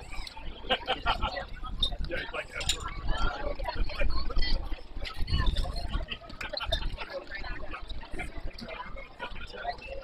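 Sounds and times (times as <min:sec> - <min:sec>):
overlapping chatter and calls: 0:00.0 - 0:10.0.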